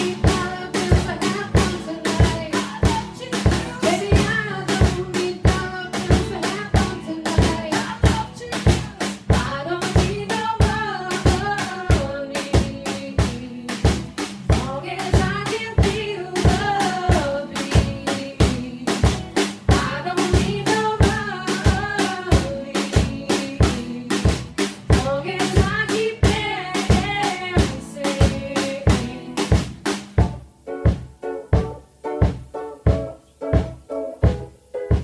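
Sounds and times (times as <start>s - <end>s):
woman singing: 0.0s - 29.8s
bass drum and snare beat: 0.0s - 35.0s
strummed ukulele: 0.0s - 35.0s.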